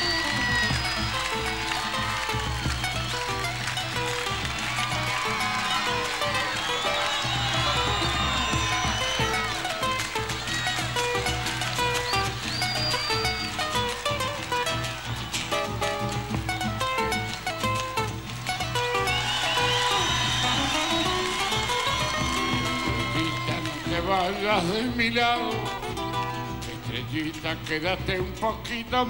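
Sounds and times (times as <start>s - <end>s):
folk band playing: 0.0s - 29.0s.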